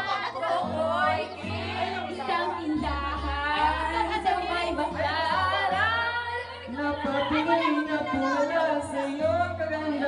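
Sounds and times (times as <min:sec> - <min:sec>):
woman singing into a microphone: 0:00.0 - 0:10.0.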